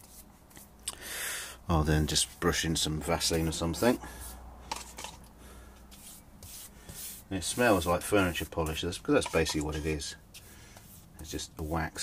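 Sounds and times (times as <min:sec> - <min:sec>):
paintbrush swishing: 0:00.0 - 0:00.7, 0:01.8 - 0:05.0, 0:05.9 - 0:12.0.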